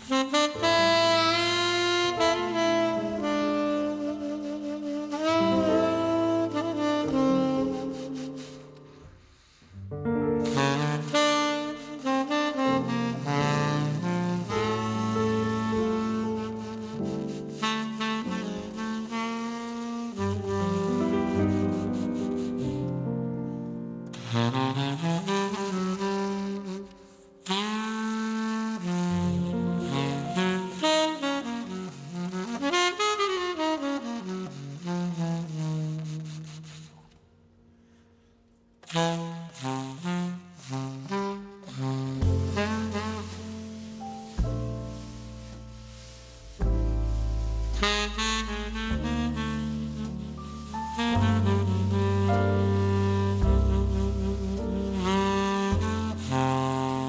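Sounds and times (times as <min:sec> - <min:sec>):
tenor saxophone ballad: 0:00.0 - 0:38.0, 0:38.8 - 0:57.0
double bass line: 0:09.9 - 0:19.5, 0:28.7 - 0:32.6, 0:41.7 - 0:57.0.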